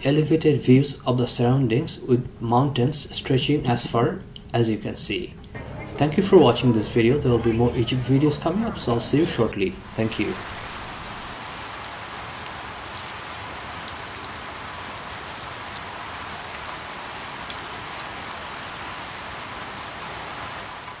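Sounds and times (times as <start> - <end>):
rain falling on leaves: 9.8 - 21.0.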